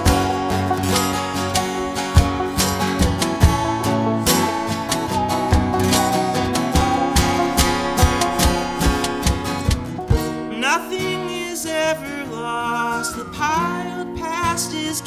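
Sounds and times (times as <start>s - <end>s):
bowed musical saw: 0.0s - 2.6s, 3.6s - 10.1s
acoustic guitar strumming: 0.0s - 15.0s.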